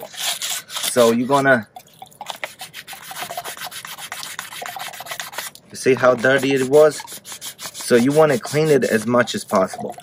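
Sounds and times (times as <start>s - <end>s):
sandpaper scrubbing copper pipe: 0.0s - 1.5s, 2.3s - 10.0s.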